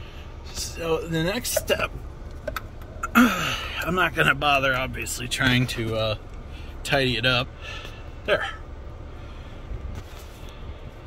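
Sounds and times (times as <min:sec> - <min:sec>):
low rumble in car cabin: 0:00.0 - 0:11.0.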